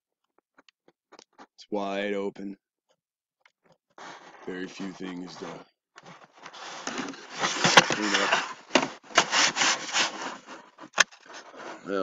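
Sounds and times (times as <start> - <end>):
man speaking: 1.6 - 2.6, 4.4 - 5.6, 7.8 - 8.4
microphone rubbing on clothing: 4.0 - 10.8.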